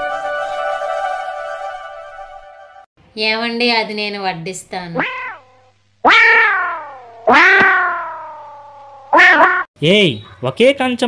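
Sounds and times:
cartoon meow sound effect: 5.0s - 9.7s.

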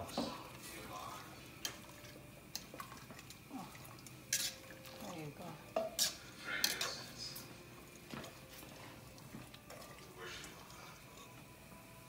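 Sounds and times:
utensil scraping pot: 4.2s - 5.1s, 5.8s - 7.1s
metal utensil clinking on pot: 4.3s - 4.7s.

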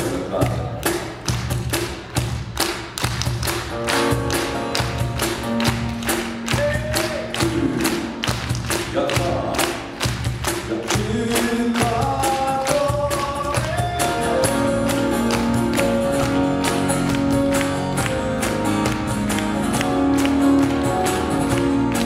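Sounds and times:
thudding percussion beat: 0.0s - 22.0s
acoustic guitar strumming: 3.7s - 22.0s
person singing: 10.6s - 18.0s.

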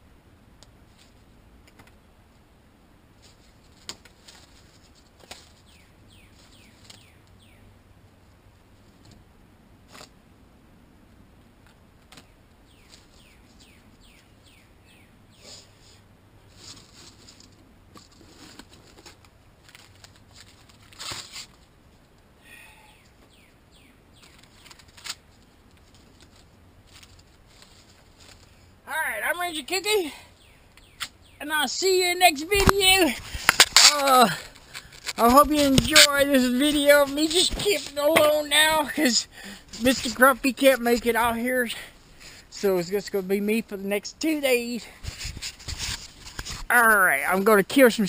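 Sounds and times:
bird chirps: 5.6s - 7.7s, 12.2s - 15.7s, 30.4s - 32.1s
twig fire crackling: 24.2s - 43.1s.

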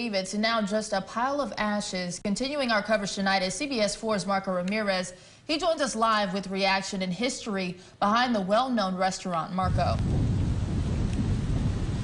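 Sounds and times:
wind buffeting microphone: 9.6s - 12.0s.

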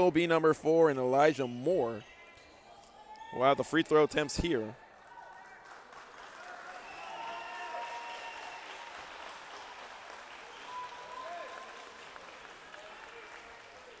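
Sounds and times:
crowd applause: 4.9s - 14.0s.

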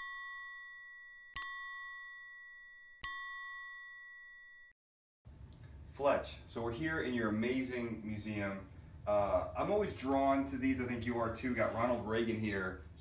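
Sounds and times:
bright bell-like chime: 0.0s - 4.7s.

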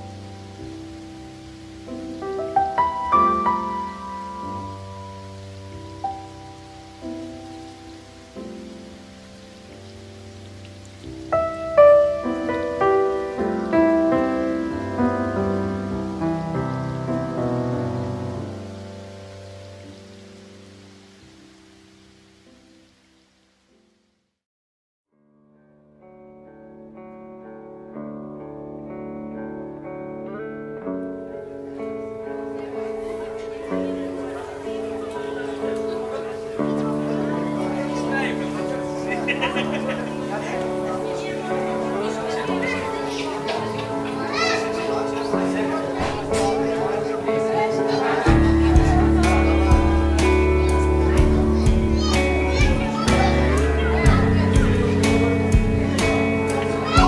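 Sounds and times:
held piano notes: 0.0s - 20.6s, 26.1s - 57.0s
rain hissing: 0.0s - 24.3s, 27.5s - 57.0s
children's voices: 31.8s - 57.0s
high child's call: 32.7s - 57.0s.

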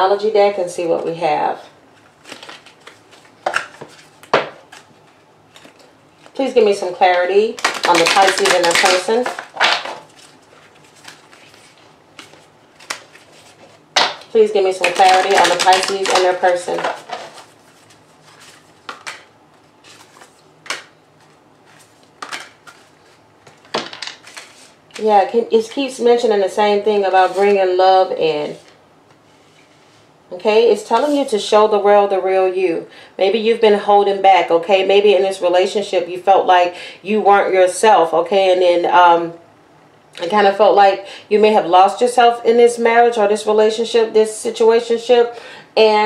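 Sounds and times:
cards being shuffled by hand: 2.0s - 6.4s, 7.1s - 25.2s
cards clicking and tapping: 14.0s - 17.4s, 18.8s - 19.3s, 22.2s - 22.8s.

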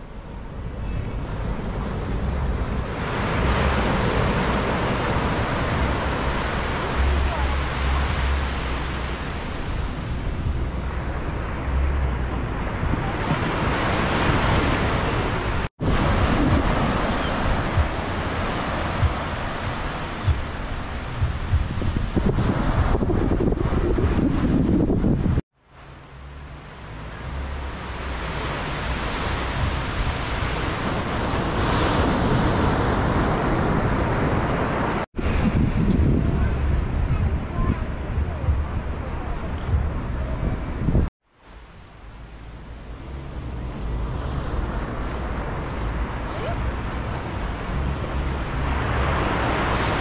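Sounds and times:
wind buffeting the microphone: 0.0s - 25.4s, 27.2s - 41.1s
small waves breaking on a beach: 1.3s - 11.7s, 12.6s - 23.0s, 25.7s - 39.6s, 41.3s - 50.0s.

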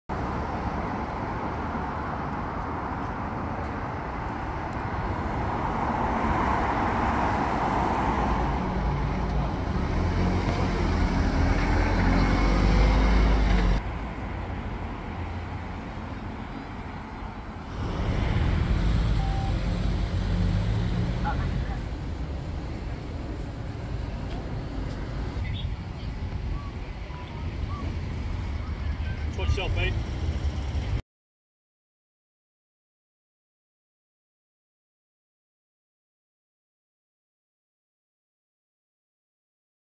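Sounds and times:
road traffic passing: 0.1s - 31.0s.

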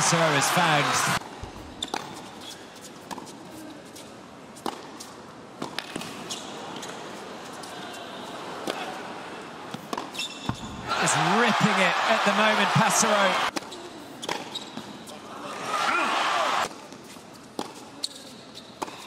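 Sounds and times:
tennis ball bounces: 4.6s - 4.9s, 17.6s - 17.8s.

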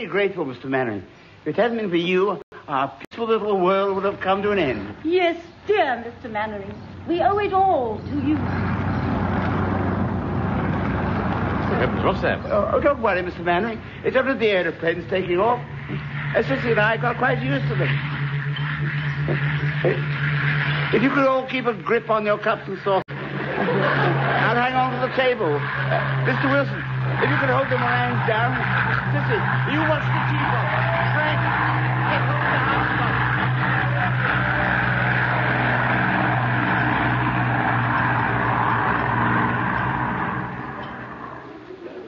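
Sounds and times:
aeroplane engines droning: 6.7s - 42.0s
planes taking off overhead: 8.0s - 41.7s.

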